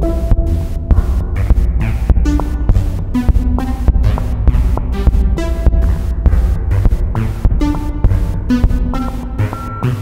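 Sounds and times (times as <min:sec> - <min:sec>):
low throbbing electronic pulse: 0:00.0 - 0:10.0
synth arpeggio notes: 0:01.9 - 0:10.0.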